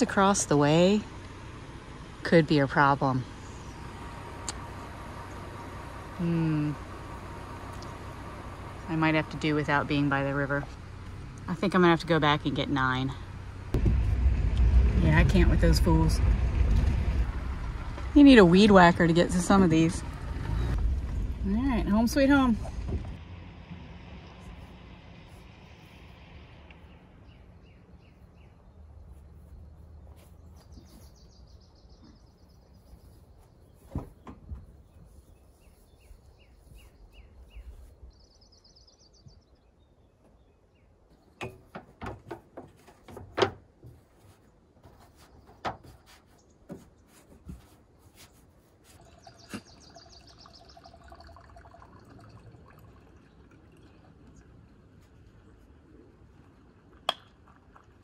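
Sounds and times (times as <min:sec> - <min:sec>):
outdoor background hum: 0:00.0 - 0:58.0
birds chirping and trilling: 0:03.2 - 0:04.1, 0:26.8 - 0:41.9, 0:49.0 - 0:51.5
sharp knocks and clunks: 0:33.9 - 0:34.8, 0:41.2 - 0:47.6.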